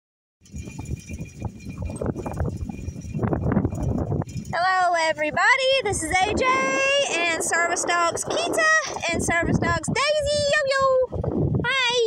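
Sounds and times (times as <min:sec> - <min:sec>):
wind buffeting microphone: 0:00.4 - 0:12.0.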